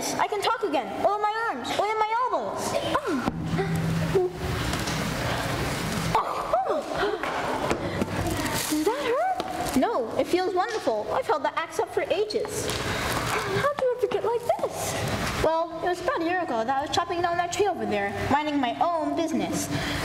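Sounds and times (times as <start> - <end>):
children's voices: 6.2 - 9.4.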